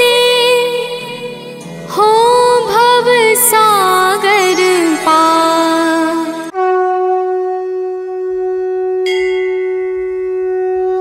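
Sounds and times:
conch shell blown: 3.9 - 11.0
bright second tone: 9.0 - 10.8.

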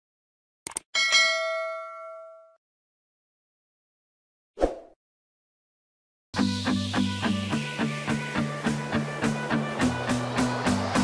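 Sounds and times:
notification bell chime: 1.0 - 2.6.

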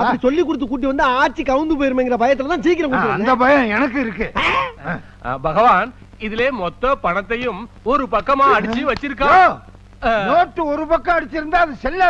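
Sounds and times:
man talking loudly: 0.0 - 12.0.

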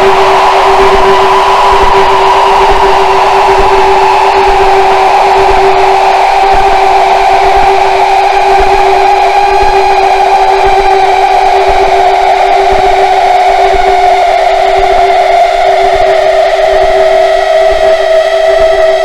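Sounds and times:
harsh feedback drone: 0.0 - 19.0.

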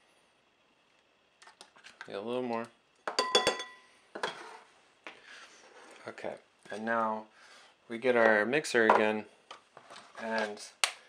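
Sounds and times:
spoon clinking on can and bowl: 3.1 - 3.8.

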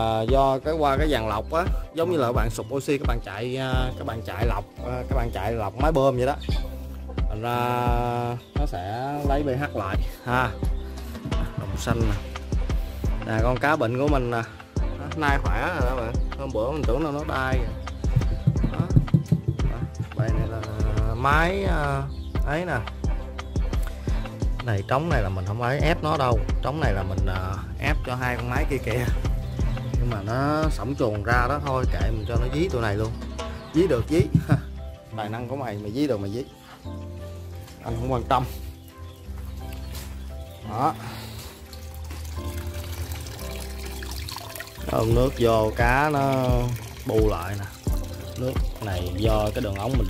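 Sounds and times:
water running from a pipe: 0.0 - 34.6, 39.3 - 50.0
background music: 0.0 - 50.0
low thuds: 17.6 - 21.5, 34.0 - 34.8.

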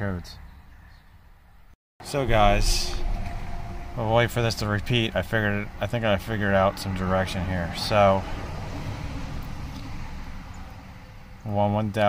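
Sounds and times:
low background rumble: 2.0 - 11.5.

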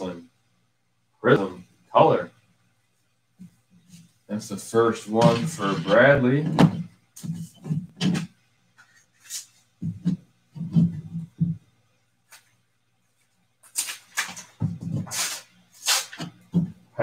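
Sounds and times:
faint steady hum: 0.0 - 17.0
paper rustling and tearing: 13.7 - 16.3.

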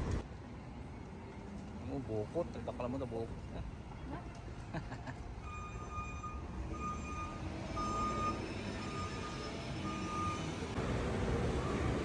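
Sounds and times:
street noise: 0.0 - 12.0
vehicle reversing alarm beeping: 5.4 - 10.8, 11.5 - 12.0.

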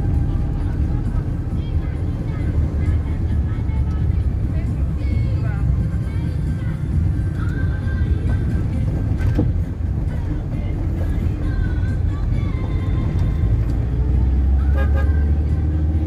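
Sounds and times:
car engine and road rumble: 0.0 - 16.0
faint music: 0.0 - 16.0.

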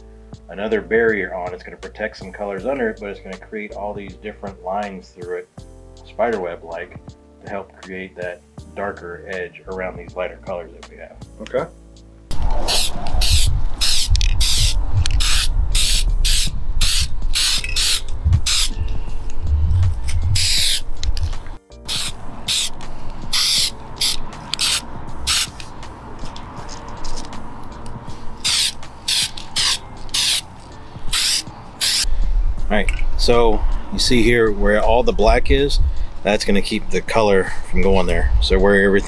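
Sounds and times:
wind rumble on microphone: 12.3 - 17.4, 18.0 - 21.6, 32.1 - 36.1, 37.8 - 39.0
aerosol spray can hissing: 12.7 - 18.8, 20.3 - 25.6, 28.4 - 30.5, 31.1 - 32.1.

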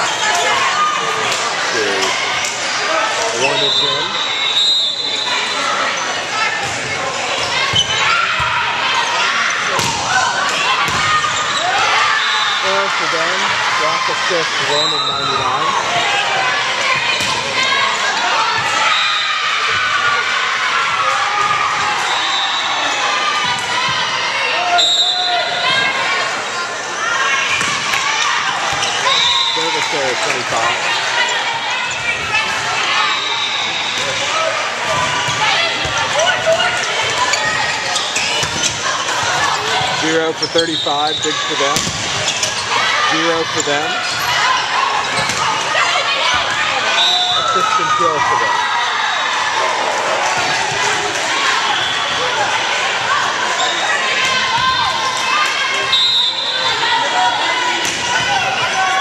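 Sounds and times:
chatter and shouts of people: 0.0 - 59.0
voices echoing in a gym: 0.0 - 59.0
referee's whistle: 3.4 - 5.6, 12.1 - 12.7, 14.7 - 15.3, 22.0 - 23.0, 24.6 - 25.8, 29.0 - 29.8, 33.0 - 34.1, 40.4 - 41.6, 46.8 - 48.0, 51.7 - 52.3, 55.8 - 56.8
volleyball smacks: 41.7 - 42.2.

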